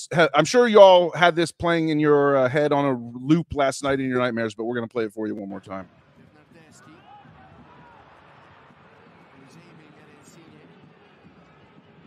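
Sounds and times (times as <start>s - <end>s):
commentator talking: 0.0s - 5.8s
stadium crowd noise: 5.0s - 12.0s.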